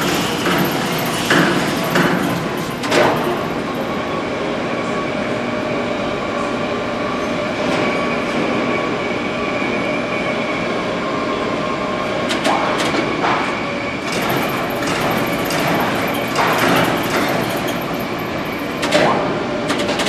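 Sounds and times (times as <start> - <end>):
machinery drone with whine: 0.0 - 20.0.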